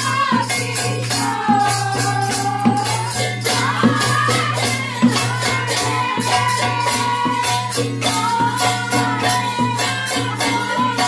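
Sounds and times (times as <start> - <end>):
tambourine and rattles: 0.0 - 11.0.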